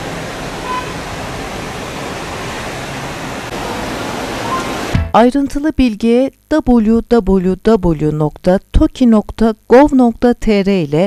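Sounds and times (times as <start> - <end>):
rushing outdoor ambience: 0.0 - 5.1.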